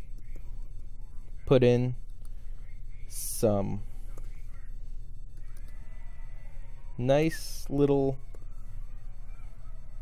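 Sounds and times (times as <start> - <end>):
faint wavering tone: 0.0 - 10.0
steady low hum: 0.0 - 10.0.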